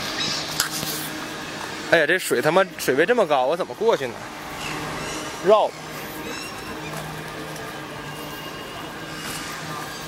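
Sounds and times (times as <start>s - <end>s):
high-pitched bird calls: 0.0s - 0.6s, 4.5s - 7.1s
steady low hum: 0.0s - 10.0s.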